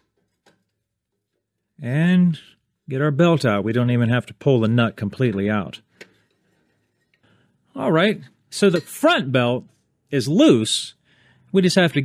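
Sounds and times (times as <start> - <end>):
man's voice: 7.8 - 9.6.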